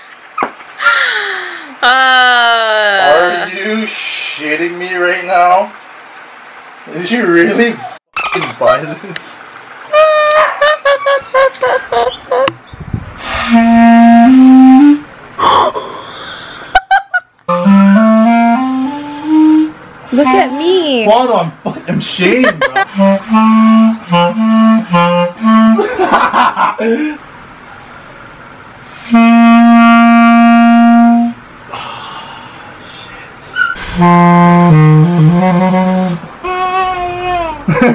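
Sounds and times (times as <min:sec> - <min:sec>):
woman laughing loudly: 0:00.8 - 0:03.3, 0:10.0 - 0:12.5, 0:15.4 - 0:17.3, 0:22.4 - 0:22.9, 0:25.8 - 0:27.0, 0:37.7 - 0:37.9
clarinet playing: 0:09.9 - 0:12.4, 0:13.3 - 0:15.1, 0:17.5 - 0:21.2, 0:22.8 - 0:25.8, 0:29.0 - 0:31.4, 0:33.9 - 0:36.6.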